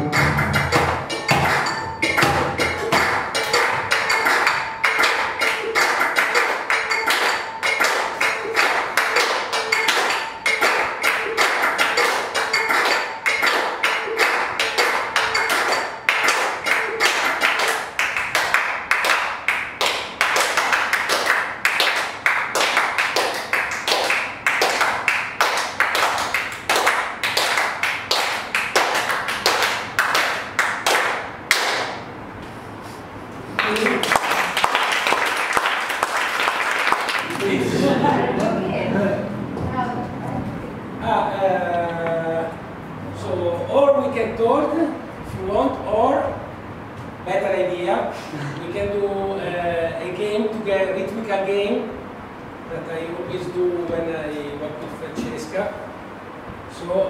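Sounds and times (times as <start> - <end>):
fast percussive taps and claps: 0.0 - 32.1, 33.6 - 37.5.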